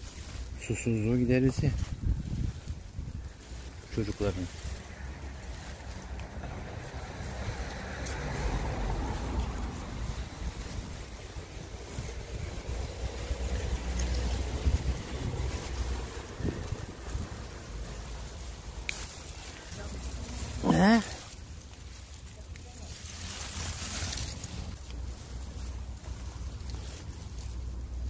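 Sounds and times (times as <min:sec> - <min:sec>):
plant leaves rustling: 0:00.0 - 0:28.0
wind buffeting microphone: 0:00.8 - 0:18.8.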